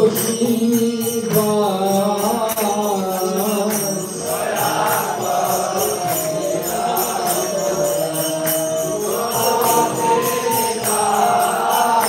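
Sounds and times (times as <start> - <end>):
small hand cymbals struck: 0.0 - 12.0.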